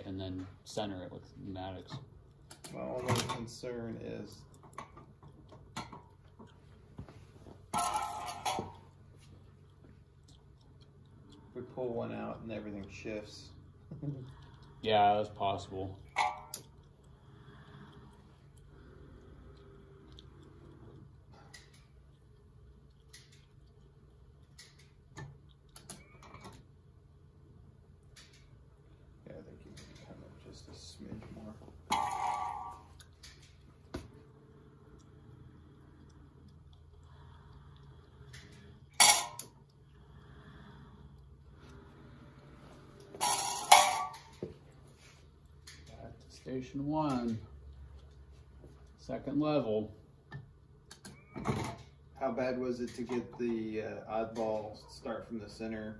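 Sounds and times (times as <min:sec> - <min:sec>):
faint low hum: 0:00.0 - 0:55.9.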